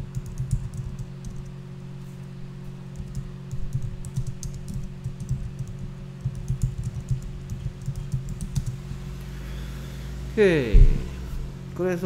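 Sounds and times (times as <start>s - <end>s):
computer keyboard typing: 0.0s - 1.5s, 2.9s - 8.8s
steady low hum: 0.0s - 12.0s.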